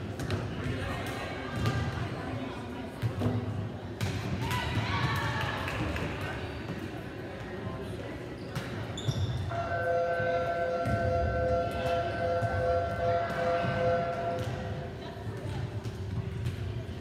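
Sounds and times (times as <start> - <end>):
steady multi-pitch tone: 9.5 - 14.5.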